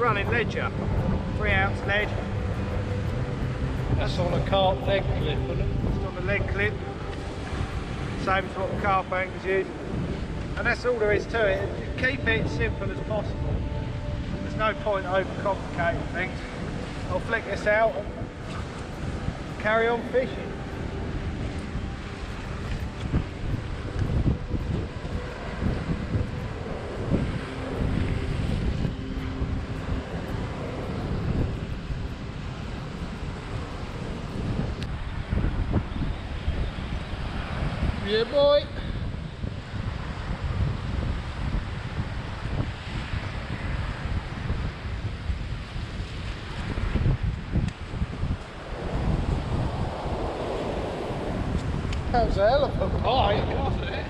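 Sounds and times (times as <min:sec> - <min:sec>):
breaking surf: 0:00.0 - 0:54.0
wind buffeting microphone: 0:00.0 - 0:54.0.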